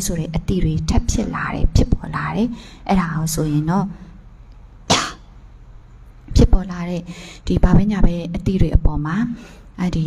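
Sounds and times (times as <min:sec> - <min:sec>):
low room hum: 0:00.0 - 0:10.0
person coughing: 0:04.9 - 0:05.3.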